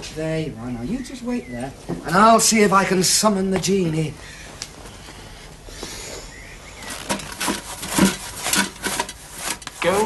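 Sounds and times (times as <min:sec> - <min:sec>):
hand rubbing metal watering can: 0:06.8 - 0:10.0.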